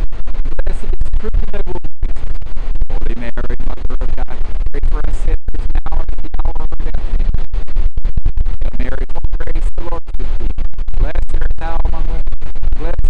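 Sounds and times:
wind buffeting microphone: 0:00.0 - 0:13.0
man talking: 0:00.6 - 0:01.8, 0:02.9 - 0:06.9, 0:08.6 - 0:10.0, 0:11.0 - 0:12.2, 0:12.8 - 0:13.0.

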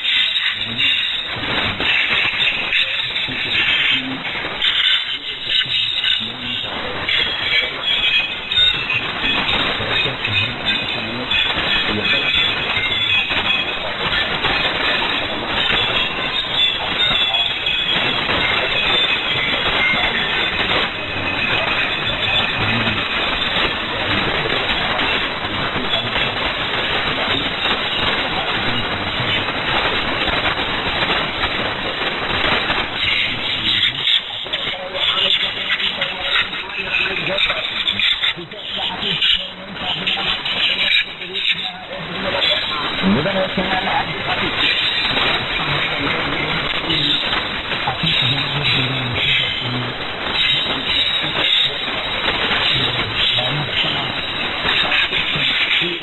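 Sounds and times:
radio static hiss: 0:00.0 - 0:56.0
thin radio programme audio: 0:00.0 - 0:56.0.

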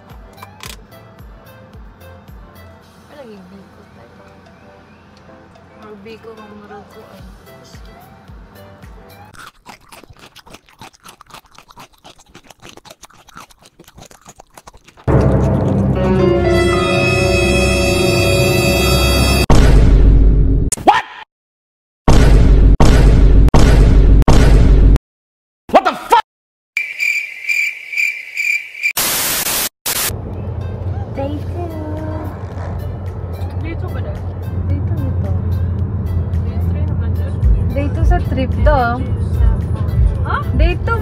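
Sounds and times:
crunchy food being chewed: 0:09.3 - 0:15.9
cricket chirping: 0:26.8 - 0:29.0
static hiss bursts: 0:29.0 - 0:30.1
music with low beat: 0:35.2 - 0:41.0.

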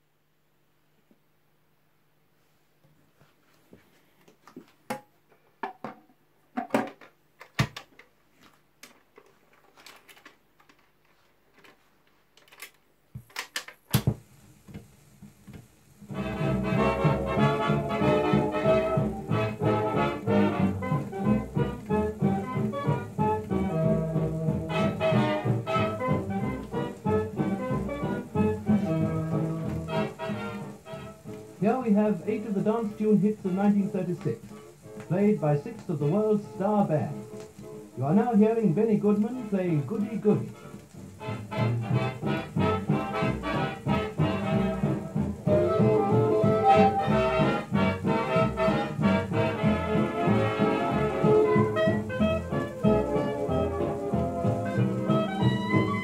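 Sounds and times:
record surface hiss: 0:00.0 - 0:56.0
dance band with brass: 0:16.0 - 0:38.2, 0:39.4 - 0:56.0.

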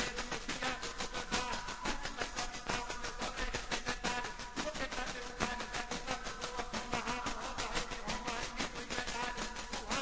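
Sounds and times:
tambourine struck fast: 0:00.0 - 0:10.0.

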